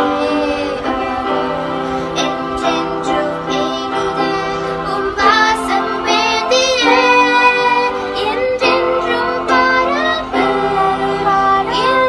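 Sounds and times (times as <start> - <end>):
electronic keyboard chords: 0.0 - 12.0
young female voices singing: 0.0 - 12.0.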